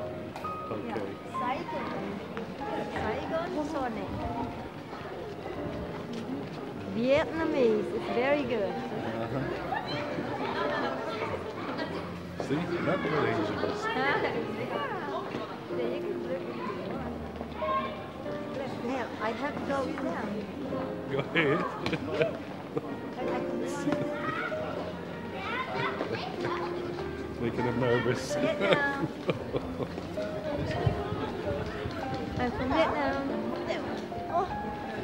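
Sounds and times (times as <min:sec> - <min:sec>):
indistinct chatter of voices: 0:00.0 - 0:35.0
young people talking excitedly: 0:00.0 - 0:35.0.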